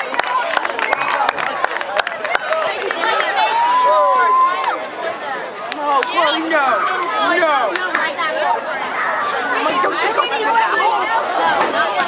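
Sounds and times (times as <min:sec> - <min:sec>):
crowd of voices chattering: 0:00.0 - 0:12.0.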